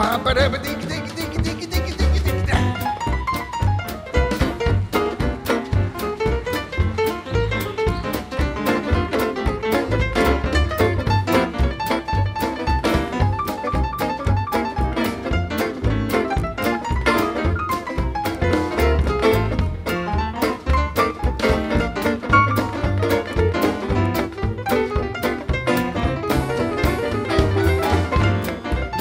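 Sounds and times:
drums: 0.0s - 29.0s
piano: 0.0s - 29.0s
upright double bass: 0.0s - 29.0s.

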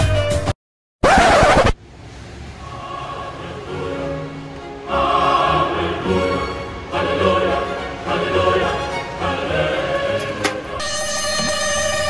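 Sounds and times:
record scratch sound effect: 1.0s - 1.8s.

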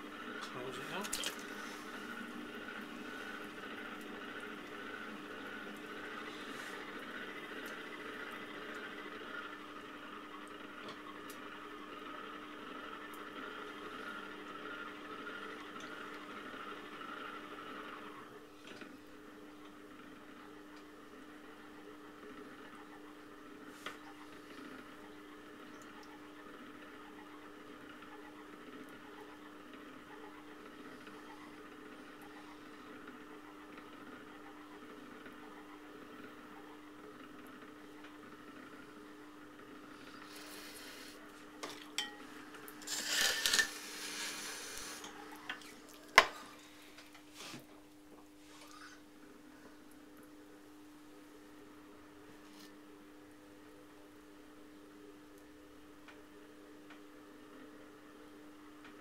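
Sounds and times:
potter's wheel motor hum: 0.0s - 59.0s.

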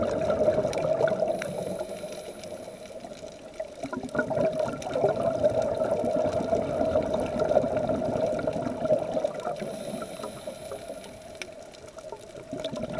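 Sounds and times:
regulator bubbles gurgling: 0.0s - 12.9s
faint clicks: 0.1s - 12.9s.

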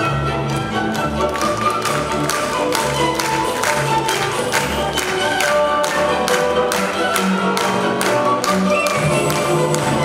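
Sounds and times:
orchestral ballet music: 0.0s - 10.0s.

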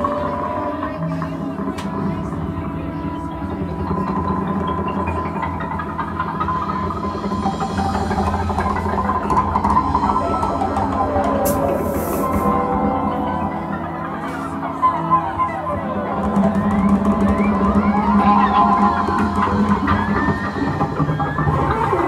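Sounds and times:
live band playing instrumental: 0.0s - 22.0s.

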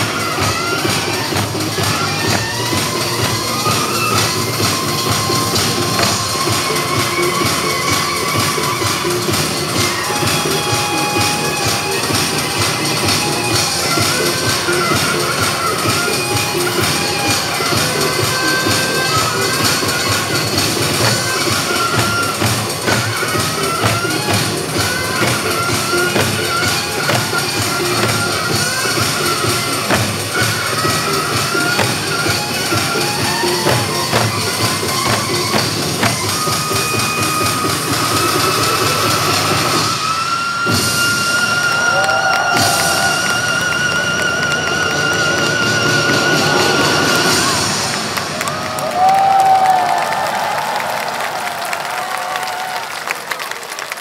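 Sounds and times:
loud dance music: 0.0s - 39.8s.

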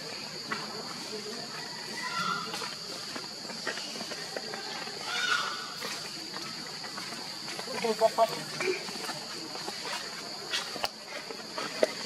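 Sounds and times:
monkey call: 1.4s - 2.8s, 5.0s - 6.5s.

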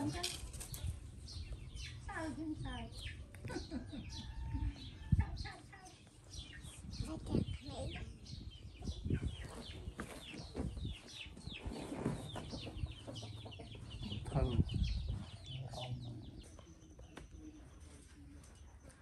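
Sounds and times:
chickens clucking: 0.0s - 19.0s.

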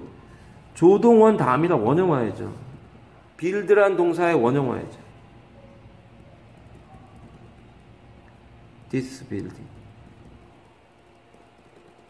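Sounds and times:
steady low hum: 0.0s - 12.0s
ballpoint pen writing on paper: 6.1s - 8.1s, 8.7s - 12.0s.

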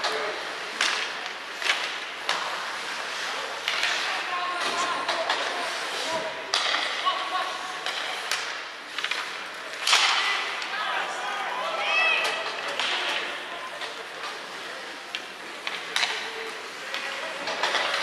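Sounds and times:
hockey sticks and puck clacking: 0.0s - 18.0s
skates scraping ice: 0.0s - 18.0s
players shouting: 9.8s - 13.9s.

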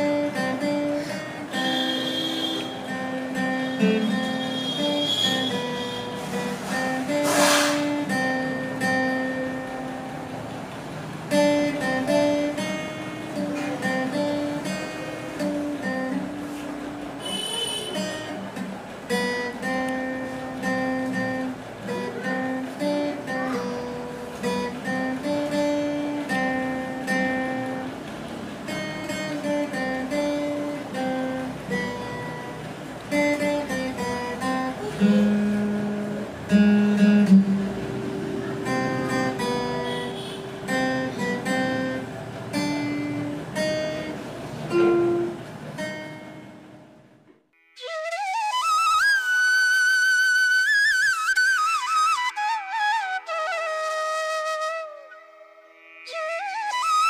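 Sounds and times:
acoustic guitar melody: 0.0s - 57.0s.

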